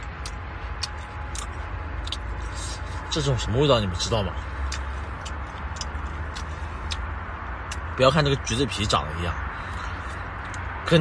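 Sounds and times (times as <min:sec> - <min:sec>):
man chewing: 0:00.0 - 0:03.3, 0:03.9 - 0:08.0, 0:09.5 - 0:10.8
steady hiss and low hum: 0:00.0 - 0:11.0.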